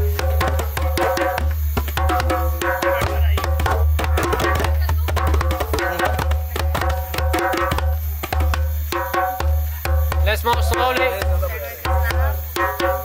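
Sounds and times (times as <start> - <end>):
djembes played by hand: 0.0 - 13.0.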